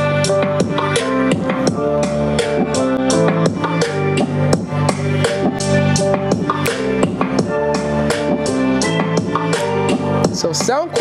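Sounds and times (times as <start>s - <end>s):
song through desktop speakers: 0.0s - 11.0s.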